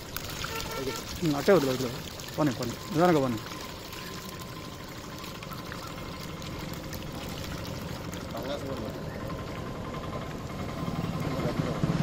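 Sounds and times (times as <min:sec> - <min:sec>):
water sloshing and trickling: 0:00.0 - 0:12.0.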